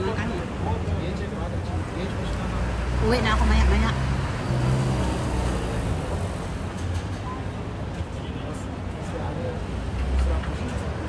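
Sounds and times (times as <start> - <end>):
street noise: 0.0 - 11.0
vehicle engines rumbling: 0.0 - 11.0.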